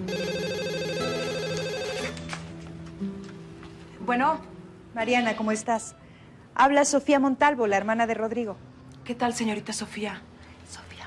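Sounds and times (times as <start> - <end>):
electronic telephone ringing: 0.0 - 2.2.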